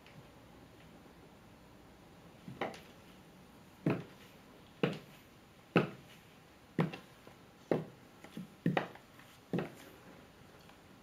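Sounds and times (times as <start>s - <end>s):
high heels clacking on tiled floor: 7.7s - 9.8s.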